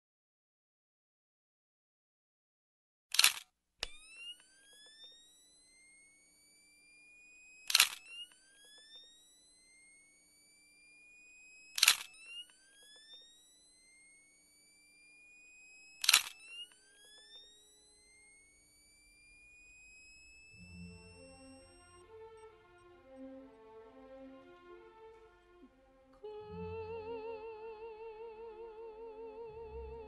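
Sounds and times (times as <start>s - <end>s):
camera shutter clicking: 3.1s - 4.0s, 7.7s - 8.1s, 11.8s - 12.3s, 16.0s - 16.5s
photo flash recharging whine: 3.1s - 23.6s.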